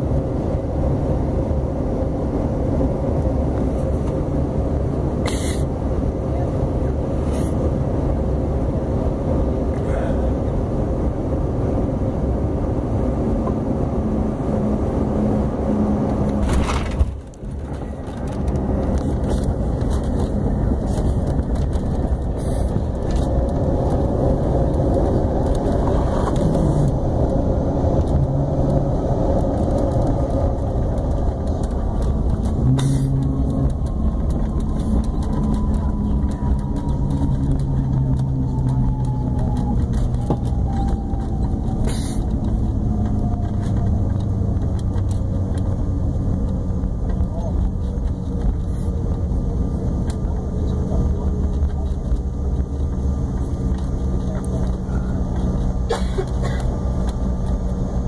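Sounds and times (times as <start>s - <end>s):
jet engines and airflow rushing: 0.0s - 58.0s
engine whine falling in pitch: 10.3s - 47.0s.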